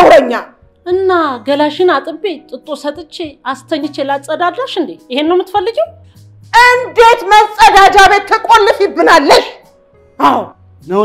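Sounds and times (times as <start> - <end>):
woman shouting in high bursts: 6.6 - 9.6.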